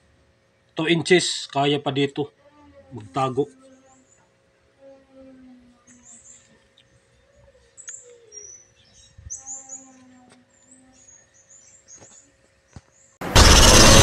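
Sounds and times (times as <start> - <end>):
small birds chirping: 2.4 - 13.7.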